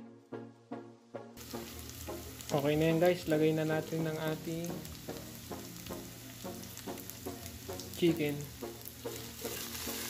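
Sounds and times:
plucked background music: 0:00.0 - 0:10.0
onions sizzling in oil: 0:01.4 - 0:10.0.

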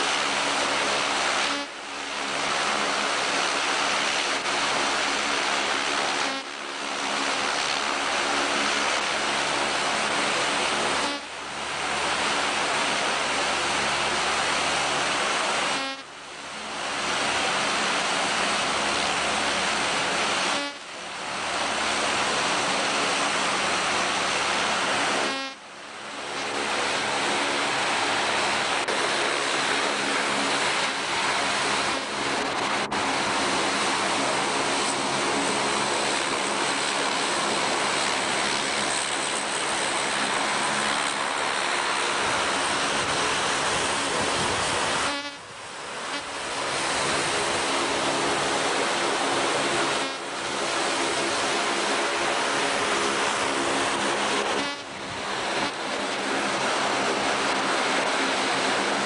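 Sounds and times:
jet turbine engines roaring: 0:00.0 - 0:59.0.

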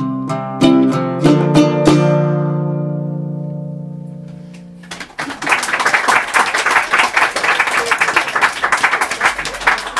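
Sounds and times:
audience applauding: 0:04.8 - 0:09.9.

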